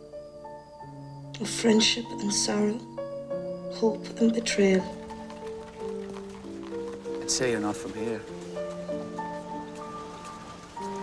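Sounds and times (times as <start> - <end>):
soft instrumental music: 0.0 - 11.0.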